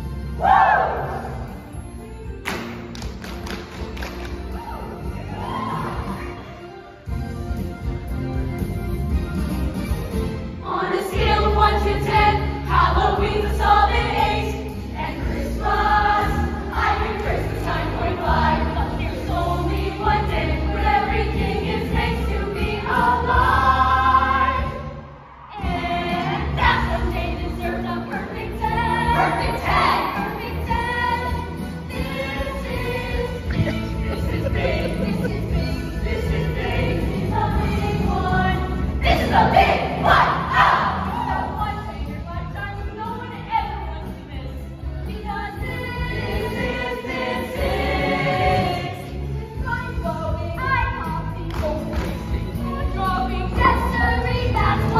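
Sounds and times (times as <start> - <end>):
musical backing track: 0.0 - 54.9
group singing a show tune: 10.6 - 54.9.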